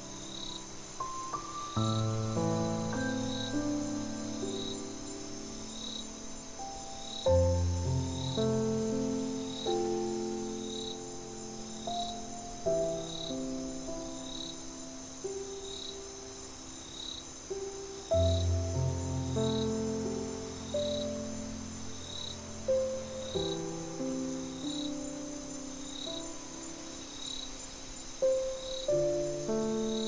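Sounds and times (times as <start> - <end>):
crickets chirping: 0.0 - 30.0
gentle solo piano: 0.0 - 30.0.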